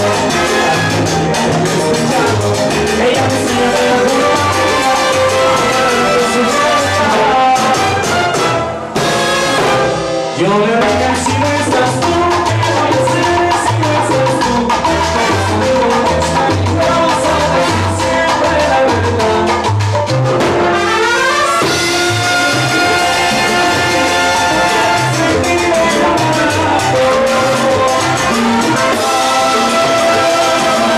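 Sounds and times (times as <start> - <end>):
horn section: 0.0 - 19.0, 20.4 - 30.9
pulsing bass line: 0.0 - 30.9
salsa band playing: 0.0 - 30.9
timbales congas and bongo drums: 0.0 - 30.9.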